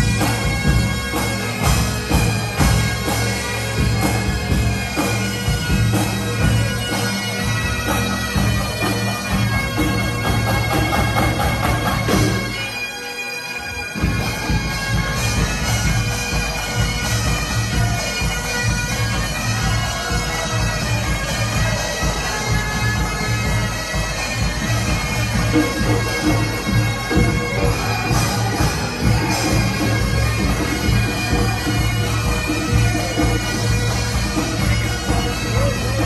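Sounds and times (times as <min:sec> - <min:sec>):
pipe band playing: 0:00.0 - 0:36.0.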